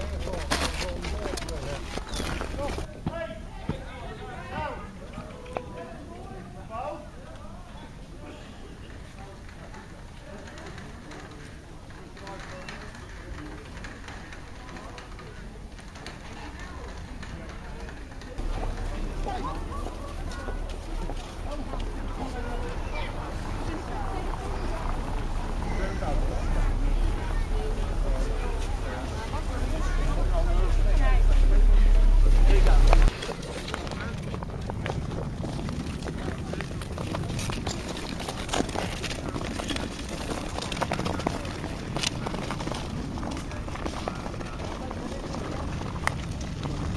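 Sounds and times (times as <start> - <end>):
indistinct voices outdoors: 0.0 - 46.9
steady low rumble: 18.4 - 37.6
wind noise on microphone: 29.6 - 46.9.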